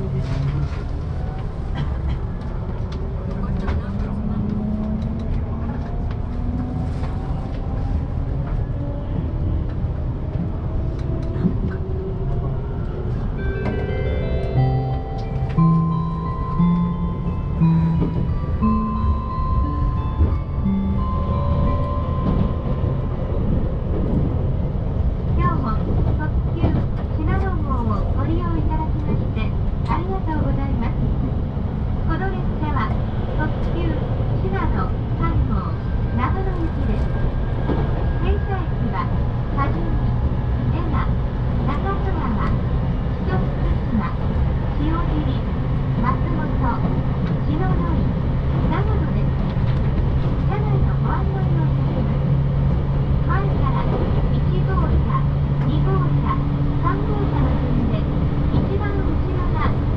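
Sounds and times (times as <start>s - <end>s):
train wheels and motors rumbling: 0.0s - 59.9s.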